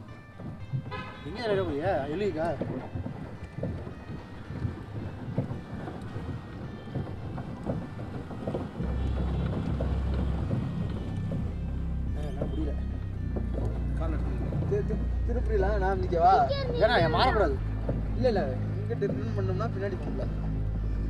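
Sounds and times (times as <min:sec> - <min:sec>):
outboard motor running: 0:00.0 - 0:21.0
water noise: 0:00.0 - 0:21.0.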